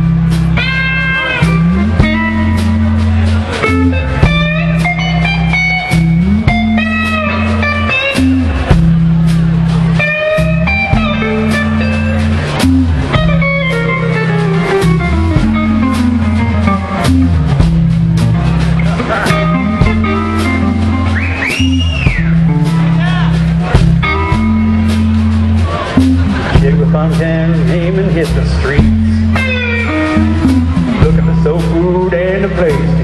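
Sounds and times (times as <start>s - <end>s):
bass line low repeated notes: 0.0s - 33.0s
drum kit steady beat: 0.0s - 33.0s
lead guitar melodic phrases: 0.0s - 33.0s.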